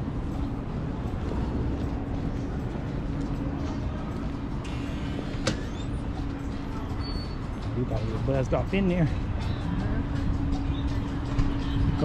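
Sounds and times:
engine hum: 0:00.0 - 0:12.0
street traffic rumble: 0:00.0 - 0:12.0.

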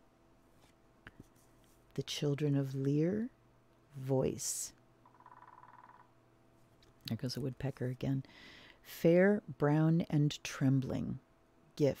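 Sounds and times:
woodpecker drumming: 0:05.0 - 0:06.2.

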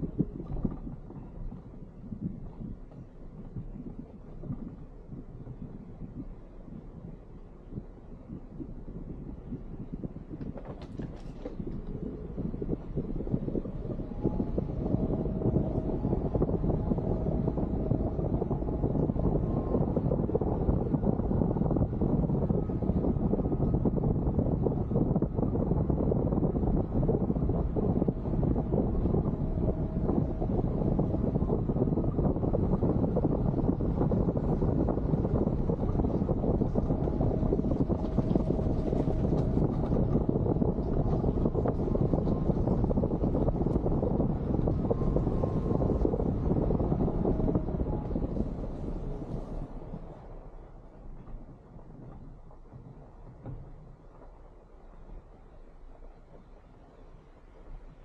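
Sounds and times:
wind on microphone: 0:00.0 - 0:58.0.

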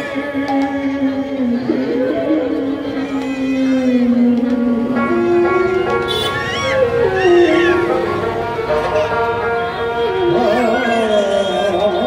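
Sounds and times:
sliding melody: 0:00.0 - 0:12.0
harmonium sustaining notes: 0:04.0 - 0:12.0.

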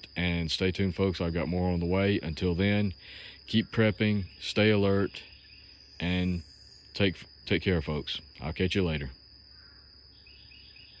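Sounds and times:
faint high chirps: 0:08.1 - 0:11.0.

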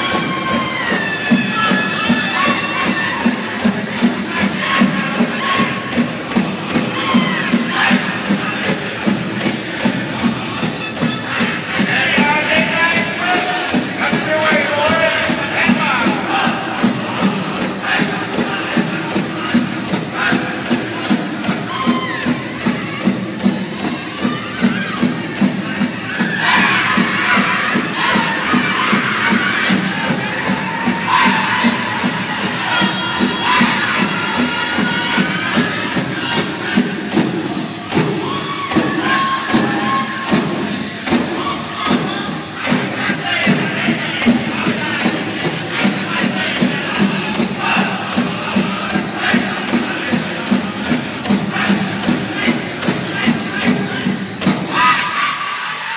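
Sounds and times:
large drum steady beat: 0:00.0 - 0:55.3
crowd cheering: 0:00.0 - 0:55.9.

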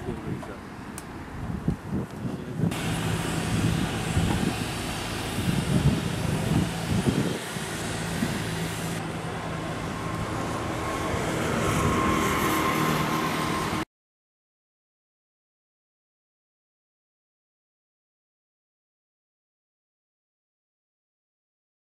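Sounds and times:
hiss: 0:02.7 - 0:09.0
truck engine running: 0:02.7 - 0:13.8.

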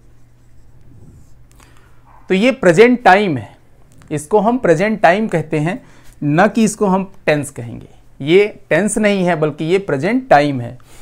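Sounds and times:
marker writing on whiteboard: 0:00.0 - 0:01.3.

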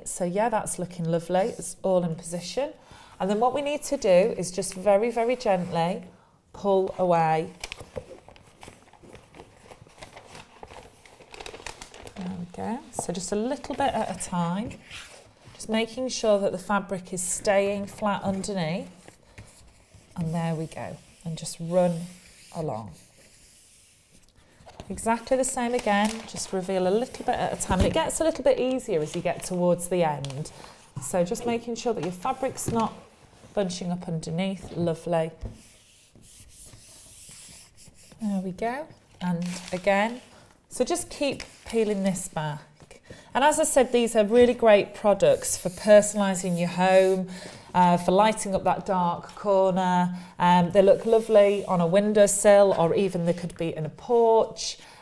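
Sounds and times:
backing paper peeling rustle: 0:07.6 - 0:12.3, 0:25.1 - 0:29.6, 0:39.4 - 0:40.3.

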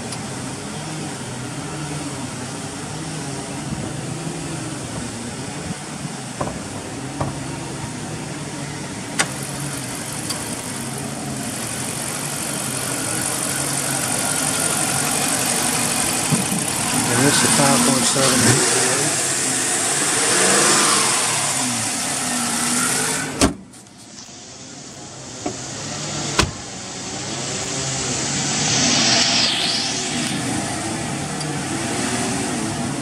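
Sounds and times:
car engine idling: 0:09.3 - 0:17.2.

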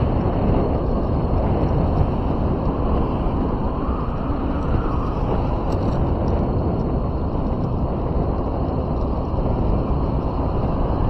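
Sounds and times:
vehicle road and wind rumble: 0:00.0 - 0:11.0.

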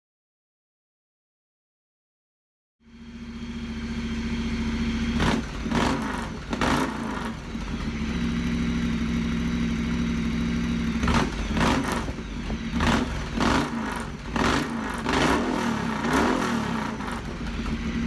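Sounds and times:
throttle revs: 0:02.8 - 0:09.3, 0:10.2 - 0:18.0
motorcycle engine idling: 0:02.8 - 0:18.0.

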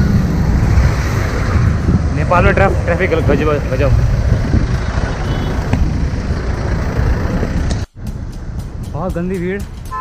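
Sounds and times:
wind rumble on microphone: 0:00.0 - 0:07.9
motorcycle engine: 0:00.0 - 0:10.0
street traffic noise: 0:00.0 - 0:10.0.

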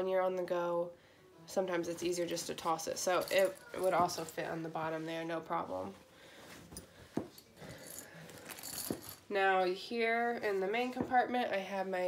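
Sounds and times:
bag rustling: 0:02.6 - 0:05.1, 0:05.7 - 0:09.3
metal clips clinking: 0:03.0 - 0:04.4, 0:06.7 - 0:09.2.

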